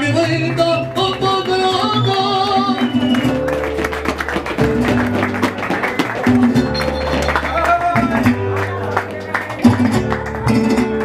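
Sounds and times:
bass notes: 0.0 - 11.0
guitars strumming fast rhythm: 0.0 - 11.0.

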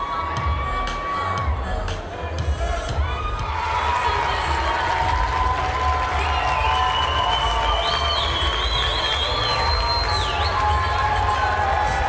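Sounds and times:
audience cheering and shouting: 0.0 - 12.0
shrill whistles from crowd: 6.0 - 11.6.

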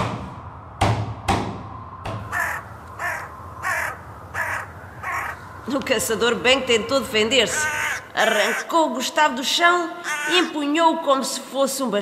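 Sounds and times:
sharp knocks: 0.0 - 2.3
crow cawing: 2.3 - 5.6, 7.3 - 8.8, 9.9 - 10.7.

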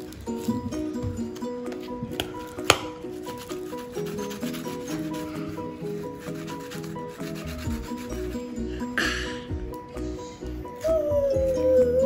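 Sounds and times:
hands rubbing modelling dough: 0.0 - 8.9
background music with repeating melody: 0.0 - 12.0
bass beat: 7.3 - 12.0.

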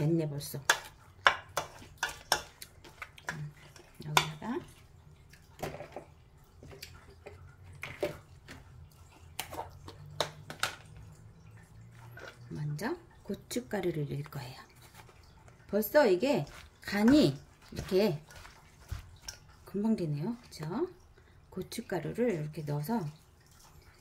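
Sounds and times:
wet rustle of vegetable strips: 0.0 - 24.0
wooden spoon scraping metal bowl: 14.8 - 20.6.

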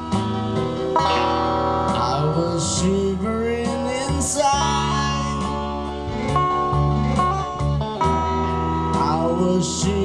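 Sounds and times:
electric guitar lead line: 0.0 - 10.0
sustained accompaniment: 0.6 - 4.2.

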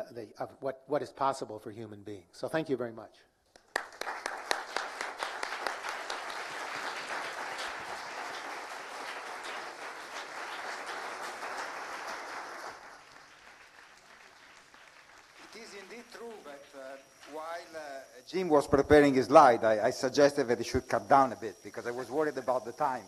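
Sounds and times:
audience applauding: 3.6 - 17.6.

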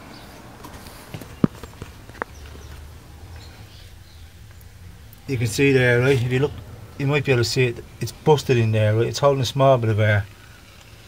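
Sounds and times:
low steady rumble: 0.5 - 11.0.

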